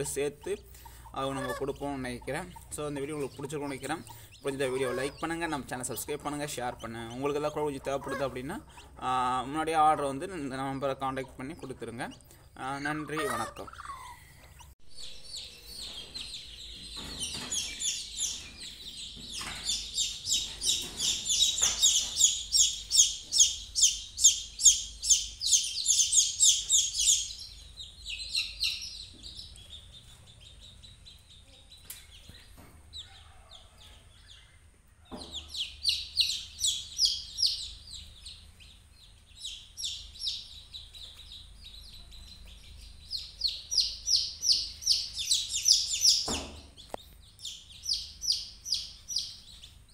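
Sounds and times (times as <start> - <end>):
chicks peeping: 0.0 - 49.9.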